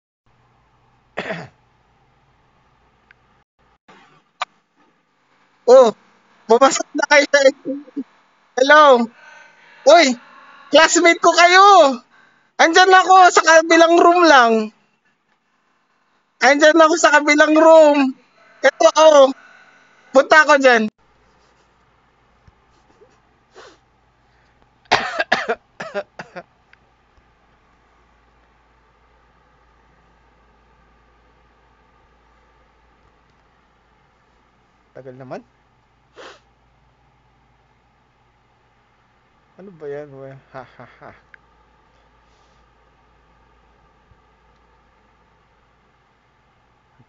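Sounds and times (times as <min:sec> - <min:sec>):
man coughing: 0:01.2 - 0:01.6, 0:24.9 - 0:26.5.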